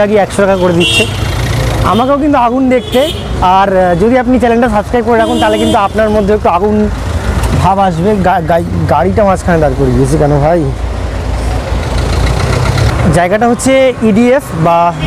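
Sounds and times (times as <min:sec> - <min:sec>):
man talking: 0:00.0 - 0:01.2, 0:01.8 - 0:10.8, 0:13.0 - 0:15.0
heavy vehicle engine rumbling: 0:00.0 - 0:15.0
street traffic: 0:00.0 - 0:15.0.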